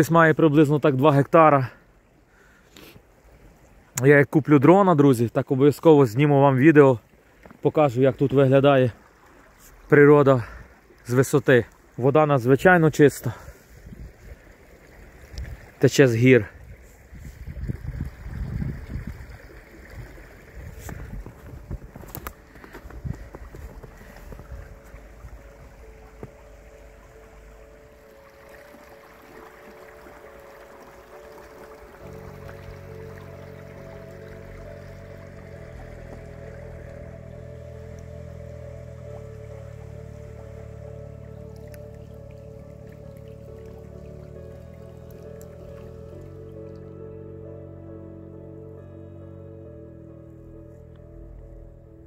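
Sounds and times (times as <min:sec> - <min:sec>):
stream running over shallow bed: 0:00.0 - 0:48.3
soft music of held chords: 0:18.6 - 0:52.0.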